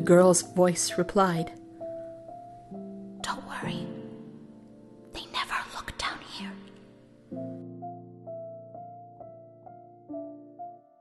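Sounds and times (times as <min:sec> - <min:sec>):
soft background music: 0:00.0 - 0:11.0
girl whispering: 0:03.2 - 0:04.0, 0:05.1 - 0:06.7.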